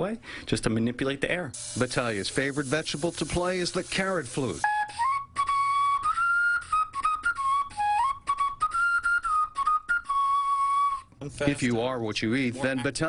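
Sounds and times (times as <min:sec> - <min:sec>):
carrot flute melody: 0:04.6 - 0:11.1.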